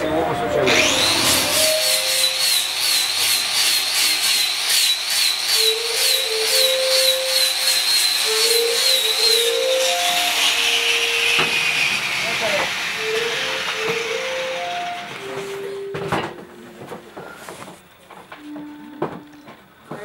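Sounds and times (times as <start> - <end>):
angle grinder grinding wood: 0.5 - 16.4.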